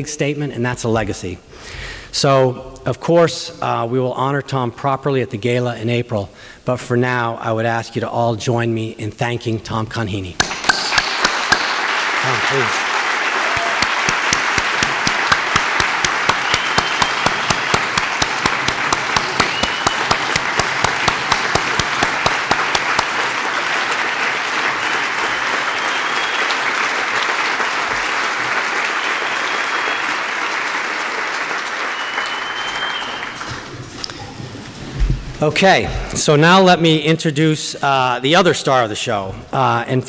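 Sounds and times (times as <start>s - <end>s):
single person clapping nearby: 10.4s - 12.0s, 13.4s - 23.4s
large audience applauding: 10.4s - 33.9s.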